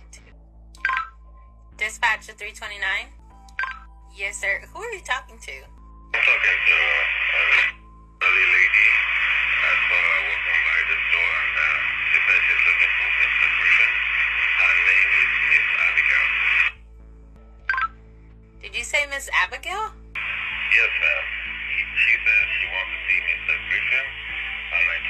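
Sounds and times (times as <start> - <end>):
speech over two-way radio: 6.2 - 9.0, 9.6 - 14.0, 14.6 - 16.4, 20.7 - 25.0.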